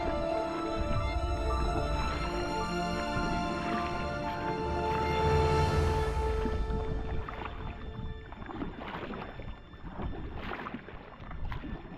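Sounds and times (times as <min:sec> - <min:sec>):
background music: 0:00.0 - 0:11.1
kayak paddles splashing in water: 0:00.0 - 0:11.9.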